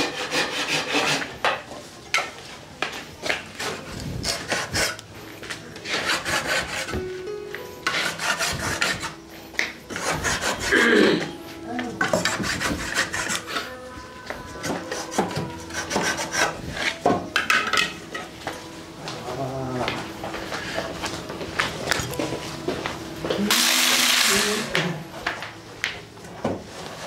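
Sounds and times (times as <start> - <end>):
wood rasping by hand: 0.0 - 1.3, 3.6 - 5.0, 5.8 - 7.1, 7.8 - 11.3, 12.0 - 13.7, 14.5 - 17.1.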